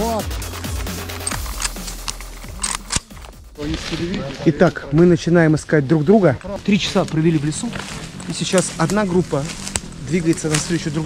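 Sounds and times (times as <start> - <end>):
electronic background music: 0.0 - 11.0
rifle clicks and snaps: 1.1 - 3.4.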